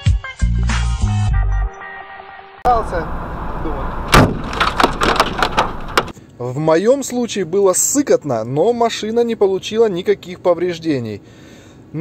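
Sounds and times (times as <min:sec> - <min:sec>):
car road and engine noise: 0:02.6 - 0:06.2
ice chunk banging on car: 0:04.1 - 0:06.1.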